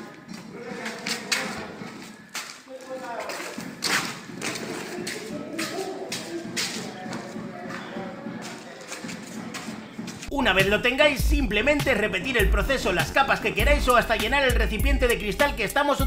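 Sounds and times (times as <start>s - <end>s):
people talking: 0.4s - 2.1s, 2.7s - 3.7s, 4.4s - 16.0s.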